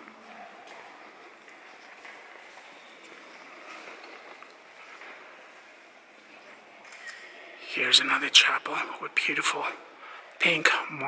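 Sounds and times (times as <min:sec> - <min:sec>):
church room noise: 0:00.0 - 0:11.0.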